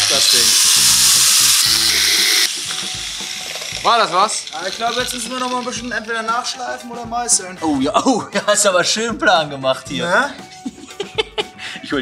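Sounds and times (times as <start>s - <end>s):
angle grinder cutting metal: 0.0s - 6.9s.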